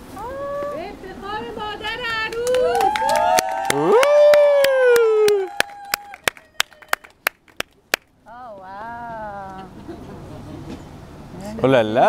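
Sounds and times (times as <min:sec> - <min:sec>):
rhythmic hand clapping: 0:02.3 - 0:08.1.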